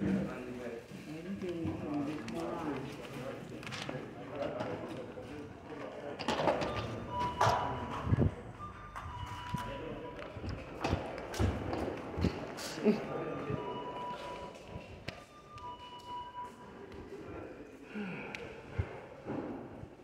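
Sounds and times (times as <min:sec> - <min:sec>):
indistinct voices: 0:01.2 - 0:19.4
short steady beeps: 0:06.7 - 0:11.7, 0:12.9 - 0:17.2.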